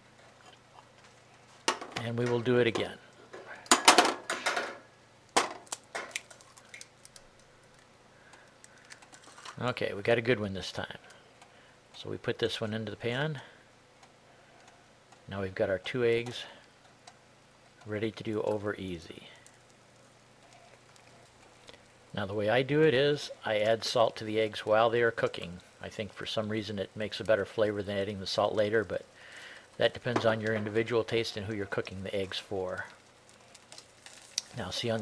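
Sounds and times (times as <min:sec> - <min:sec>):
eggs sizzling in a pan: 0:03.6 - 0:09.6, 0:13.6 - 0:35.0
eggshell cracking: 0:05.3 - 0:09.6, 0:29.0 - 0:35.0.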